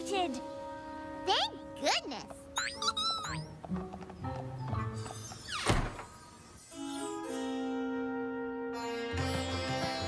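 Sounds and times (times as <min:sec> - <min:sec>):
cartoon background music: 0:00.0 - 0:05.6
light hoof taps: 0:03.4 - 0:04.8
door slamming shut: 0:05.5 - 0:06.2.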